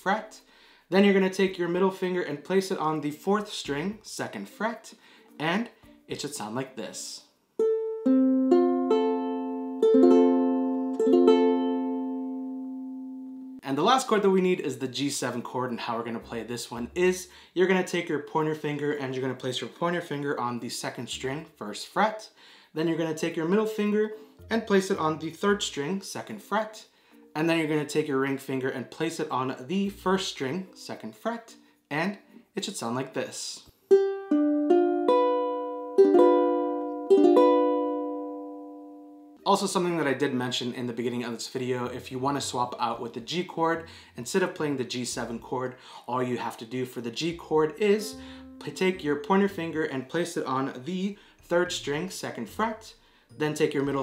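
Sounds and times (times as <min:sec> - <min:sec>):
ukulele chord strummed: 0:07.6 - 0:13.6, 0:33.9 - 0:39.4, 0:47.4 - 0:50.2.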